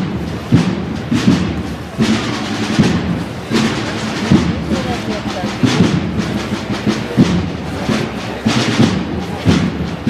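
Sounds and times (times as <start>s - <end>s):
murmur of crowd voices: 0.0s - 10.0s
procession drums beating: 0.0s - 10.0s.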